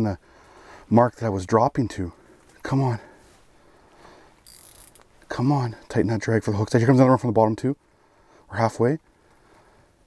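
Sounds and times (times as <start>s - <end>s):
faint hiss: 0.0s - 1.4s, 2.0s - 10.0s
fishing reel ratcheting rasp: 4.4s - 5.0s.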